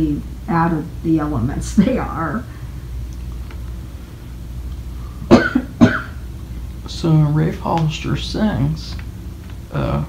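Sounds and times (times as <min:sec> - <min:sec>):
steady low hum: 0:00.0 - 0:10.0
person coughing: 0:05.3 - 0:06.2.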